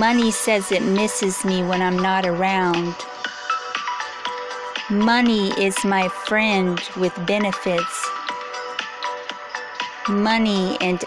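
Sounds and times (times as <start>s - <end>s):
soft electronic music: 0.0s - 11.0s.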